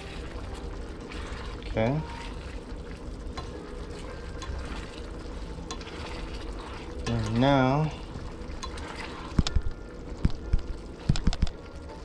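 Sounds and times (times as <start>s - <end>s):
sauce bubbling in a skillet: 0.0s - 12.0s.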